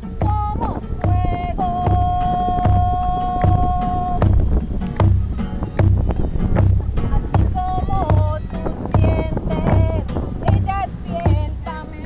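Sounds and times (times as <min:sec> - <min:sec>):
barrel drum played by hand: 0:00.0 - 0:12.0.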